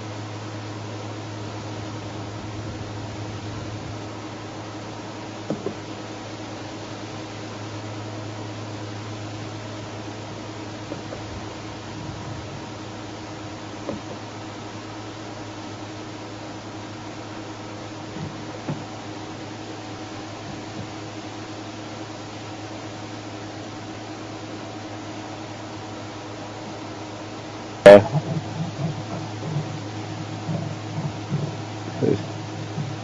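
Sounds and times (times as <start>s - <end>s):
low hum with hiss: 0.0s - 33.0s
faint knocks and rustles: 28.0s - 33.0s.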